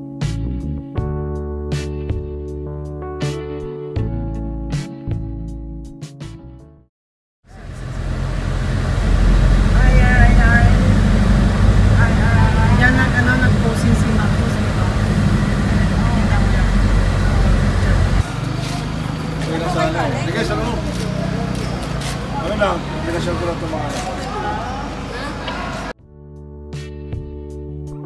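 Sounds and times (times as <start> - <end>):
car engine and tyre rumble: 7.5 - 25.9
faint voices: 9.6 - 25.9
people talking outdoors: 9.6 - 25.9.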